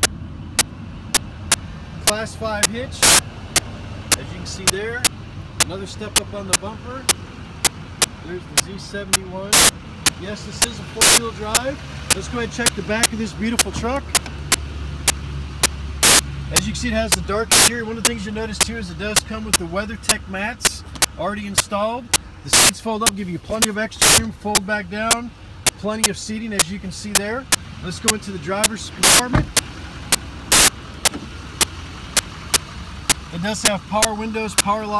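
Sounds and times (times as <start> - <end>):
sharp clicks: 0.0 - 34.8
engine idling: 0.0 - 34.9
motor vehicle rumble: 0.0 - 34.9.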